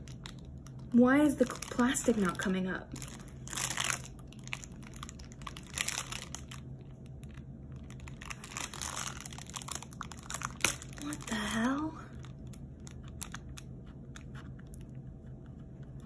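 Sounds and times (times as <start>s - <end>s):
plastic film crinkling: 0.0s - 13.7s.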